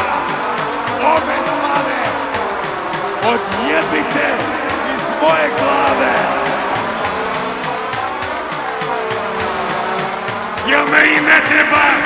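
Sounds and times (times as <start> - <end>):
drum machine kick beat: 0.0 - 12.0.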